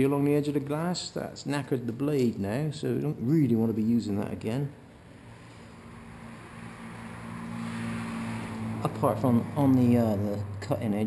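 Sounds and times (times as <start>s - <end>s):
vehicle engine droning: 5.0s - 11.0s.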